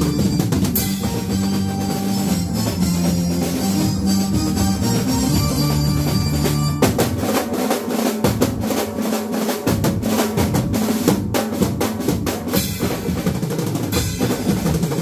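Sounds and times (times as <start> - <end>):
keyboard: 0.0 - 7.2
drum kit rolls and fills: 0.0 - 15.0.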